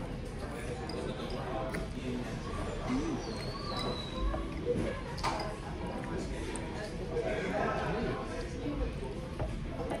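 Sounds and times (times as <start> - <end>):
diners chattering: 0.0 - 9.9.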